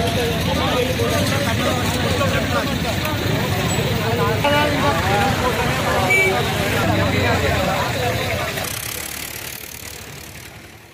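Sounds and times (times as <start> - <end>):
people talking: 0.0 - 10.6
road traffic noise: 0.0 - 10.9.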